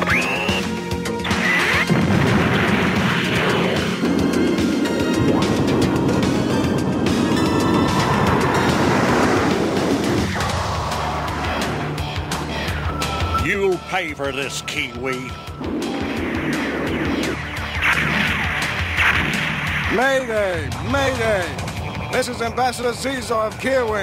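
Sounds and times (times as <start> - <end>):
cartoon background music: 0.0 - 24.0
rushing crashing sound effect: 1.7 - 12.0, 15.6 - 21.6.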